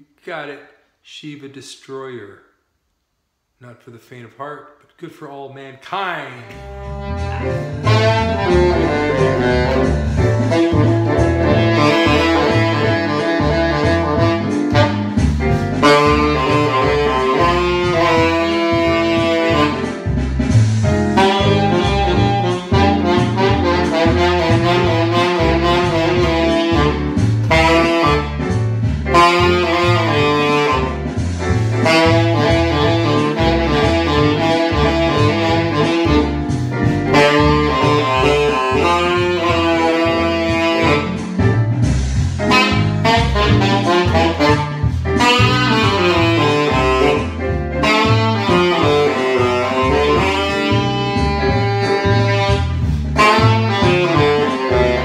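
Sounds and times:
backing track with bass line: 6.0s - 55.0s
tenor saxophone jazz melody: 6.3s - 55.0s.

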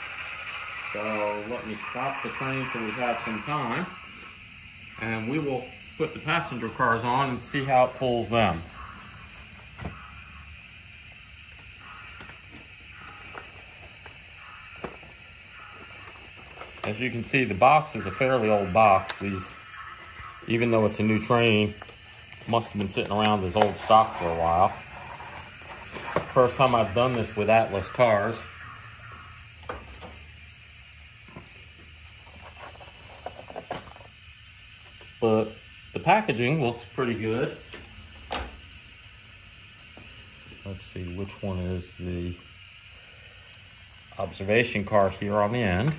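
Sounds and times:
steady low hiss: 0.0s - 45.9s.

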